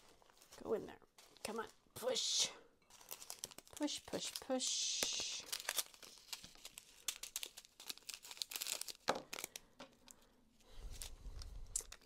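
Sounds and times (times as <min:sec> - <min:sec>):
plastic bags crinkling: 0:02.8 - 0:12.0.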